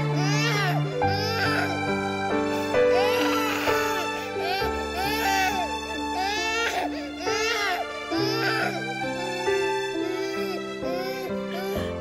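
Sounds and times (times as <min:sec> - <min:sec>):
baby crying: 0:00.0 - 0:12.0
background music sustained notes: 0:00.0 - 0:12.0.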